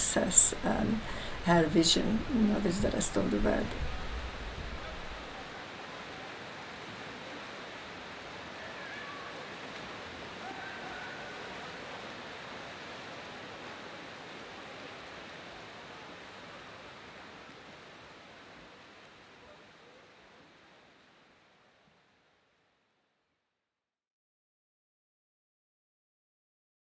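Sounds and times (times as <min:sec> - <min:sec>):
water splashing: 0:00.0 - 0:05.5
faint distant voices: 0:00.0 - 0:09.7.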